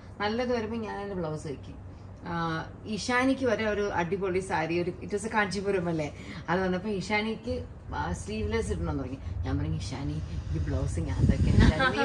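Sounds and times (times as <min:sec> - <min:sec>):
women talking: 0:09.5 - 0:12.0
women laughing: 0:11.6 - 0:12.0.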